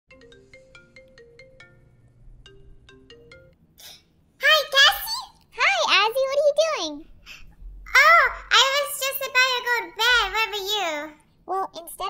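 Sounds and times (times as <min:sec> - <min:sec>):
chiming phone ringtone: 0:00.1 - 0:03.5.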